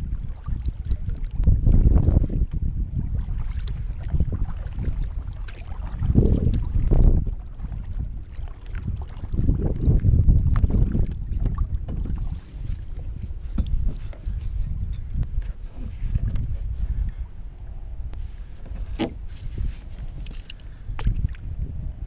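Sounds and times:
kayak paddling in water: 0:00.0 - 0:22.0
wind buffeting microphone: 0:00.0 - 0:22.0
water drips and clicks: 0:03.6 - 0:03.8, 0:05.5 - 0:07.0.

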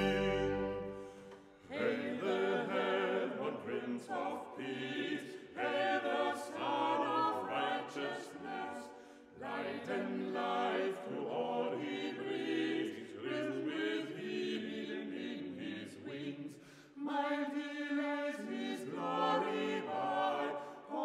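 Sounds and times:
group singing a cappella: 0:00.0 - 0:21.0.

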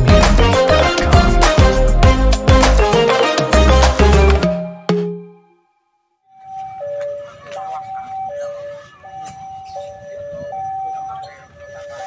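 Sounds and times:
level-crossing alarm two-tone: 0:06.3 - 0:12.0.

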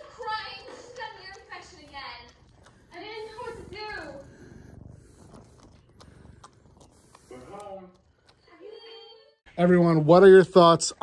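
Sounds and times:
cat purring: 0:00.0 - 0:08.5.

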